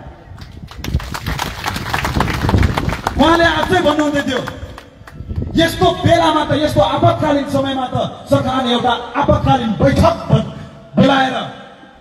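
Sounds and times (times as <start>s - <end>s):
crowd applauding: 0.4s - 5.2s.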